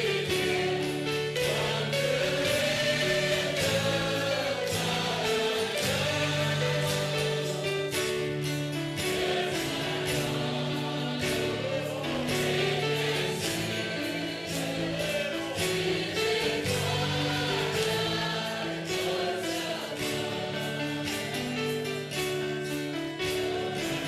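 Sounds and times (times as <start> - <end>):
choir singing: 0.0 - 24.0.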